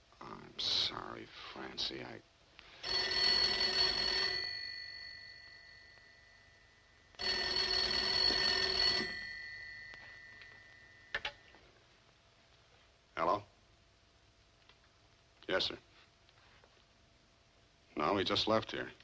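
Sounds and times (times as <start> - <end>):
telephone bell ringing: 2.8 - 11.6.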